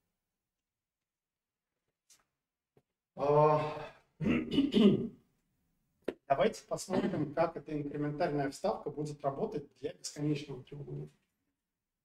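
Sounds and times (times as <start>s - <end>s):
man clearing his throat: 3.6s - 5.2s, 7.0s - 7.3s.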